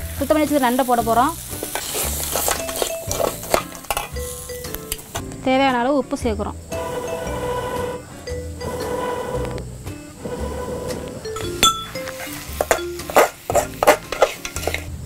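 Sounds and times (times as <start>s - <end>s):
background music with steady beat: 0.0s - 15.0s
metal spatula scraping steel pan: 10.2s - 14.9s.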